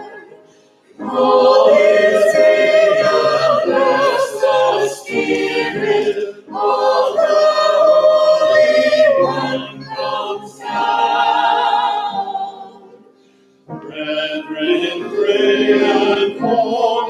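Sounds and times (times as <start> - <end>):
church choir singing: 0.0 - 17.0.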